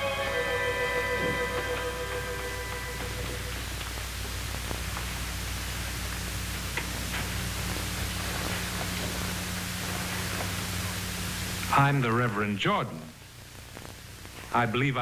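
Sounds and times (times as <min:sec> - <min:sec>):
held music notes: 0:00.0 - 0:04.4
low hum: 0:00.0 - 0:12.3
steady hiss: 0:00.0 - 0:15.0.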